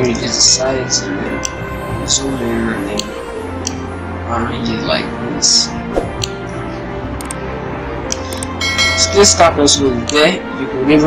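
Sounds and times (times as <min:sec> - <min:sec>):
background music: 0:00.0 - 0:11.0
bright bell-like ringing tone: 0:08.6 - 0:09.6.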